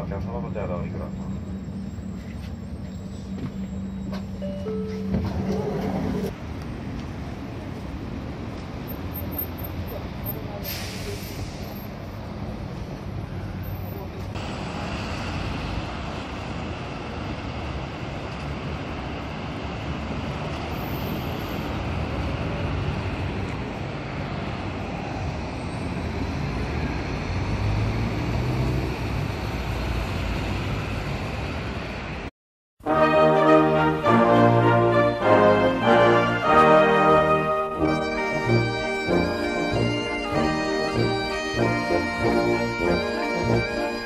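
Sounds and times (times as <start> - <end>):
diesel bus running: 0.0 - 32.3, 32.9 - 44.0
traffic passing: 0.0 - 44.0.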